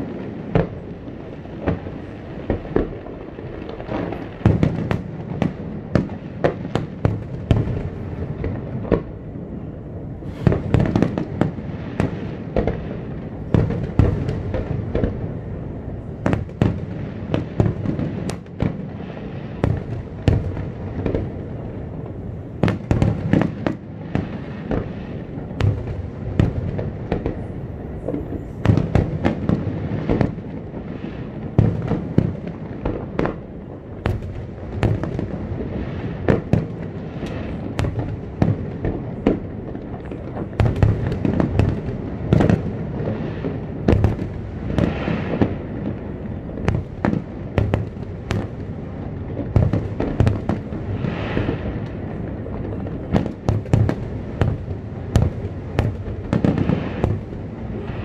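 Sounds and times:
firework bangs and crackles: 0:00.0 - 0:58.0.

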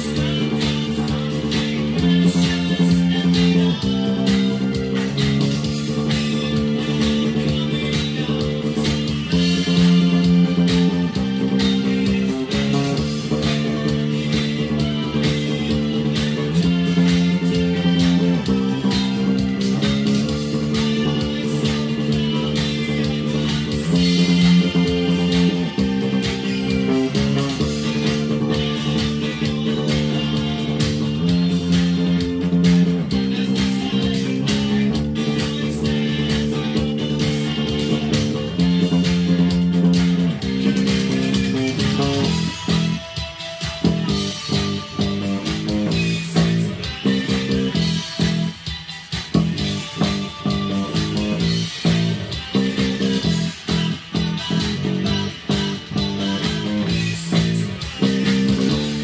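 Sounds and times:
electric bass played with fingers: 0:00.0 - 0:59.0
new wave band recording: 0:00.0 - 0:59.0.

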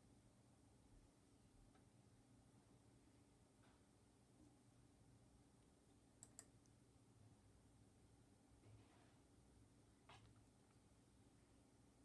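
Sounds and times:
faint sharp clicks: 0:06.2 - 0:06.8.

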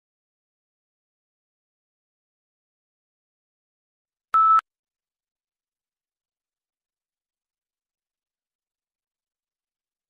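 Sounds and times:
short steady beep: 0:04.4 - 0:04.6.

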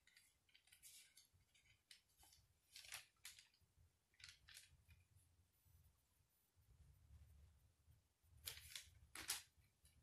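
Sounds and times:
thin pages turning: 0:00.0 - 0:05.0, 0:08.4 - 0:09.6.

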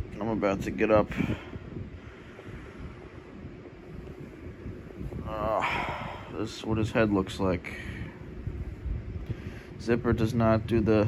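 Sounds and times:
microphone handling rumble: 0:00.0 - 0:11.0.

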